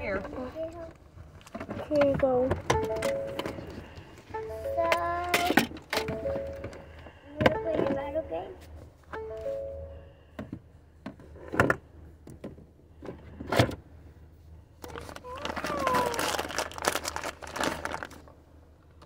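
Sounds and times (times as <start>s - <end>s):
plastic bag crinkling: 14.8s - 18.3s.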